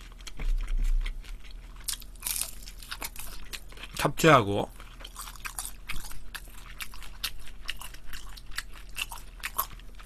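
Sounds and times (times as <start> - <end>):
chewing crunchy fried food: 0.0 - 10.0.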